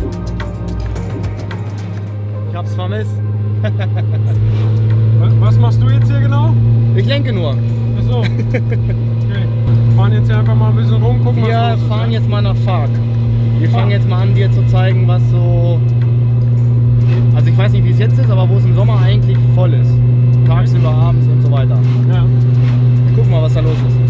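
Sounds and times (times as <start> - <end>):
car engine drone from inside cabin: 0.0 - 24.0.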